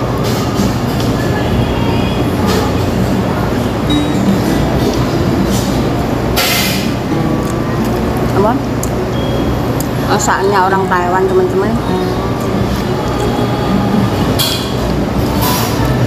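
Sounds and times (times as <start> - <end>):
dishes clinking: 14.3 - 15.9.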